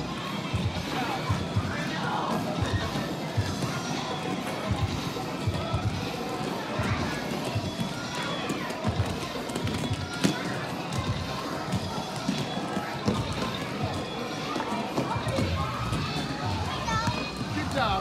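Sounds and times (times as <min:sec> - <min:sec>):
crowd voices: 0:00.0 - 0:18.0
roller skates rolling on wooden floor: 0:02.3 - 0:18.0.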